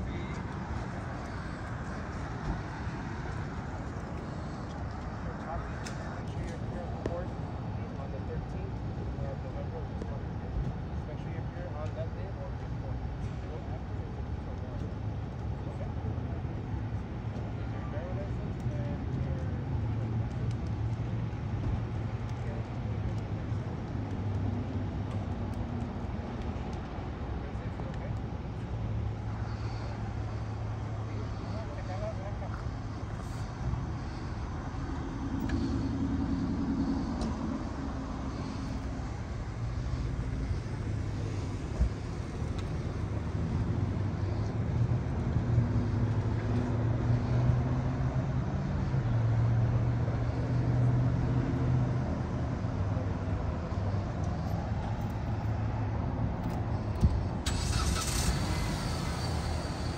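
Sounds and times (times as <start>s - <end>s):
passing road traffic: 0.0s - 59.9s
vehicles running low hum: 0.0s - 59.9s.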